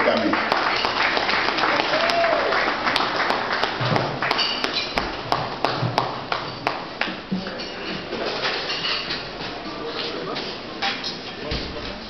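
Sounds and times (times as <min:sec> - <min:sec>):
audience applauding: 0:00.0 - 0:06.4.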